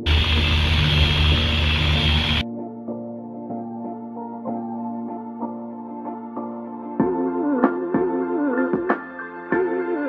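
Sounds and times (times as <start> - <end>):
electric car polisher drone: 0.0 - 2.4.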